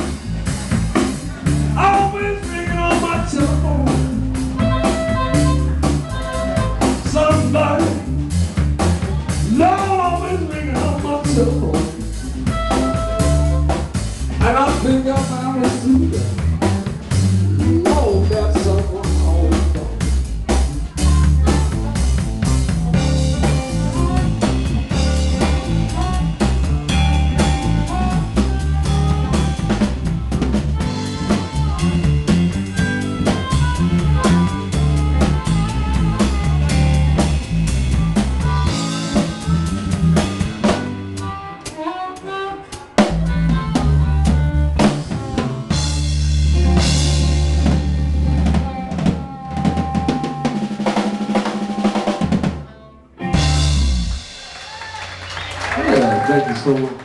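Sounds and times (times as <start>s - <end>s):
drum kit: 0.0s - 57.0s
electric guitar: 0.0s - 57.0s
harmonica: 2.4s - 7.8s, 23.0s - 53.7s.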